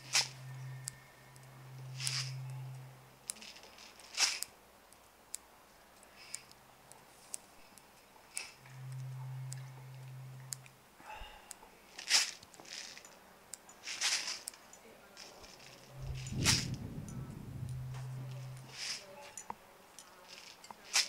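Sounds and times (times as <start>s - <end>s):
low steady hum: 0.0s - 20.8s
objects handled on floor: 11.9s - 21.0s.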